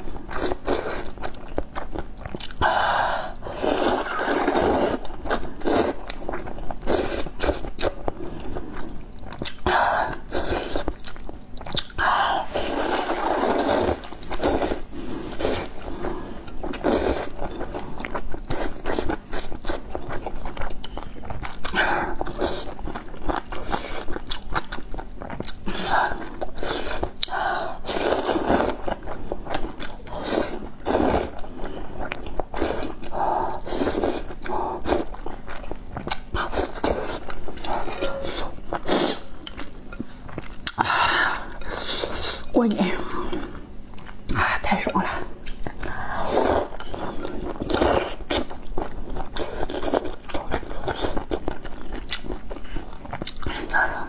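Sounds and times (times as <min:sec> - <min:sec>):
chewing: 0:00.0 - 0:02.6, 0:03.6 - 0:44.4, 0:45.2 - 0:54.0
noodles slurping: 0:03.5 - 0:06.2, 0:11.7 - 0:17.4.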